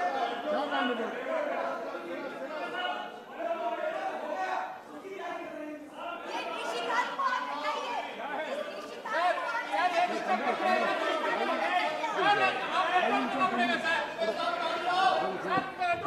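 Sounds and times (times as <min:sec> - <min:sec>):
many voices talking: 0:00.0 - 0:16.0.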